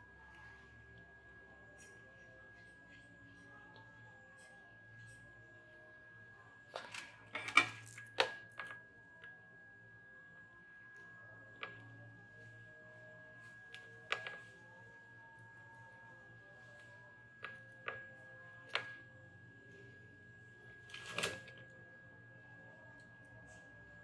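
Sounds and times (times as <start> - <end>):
small tools clicking and tapping: 6.7 - 8.8.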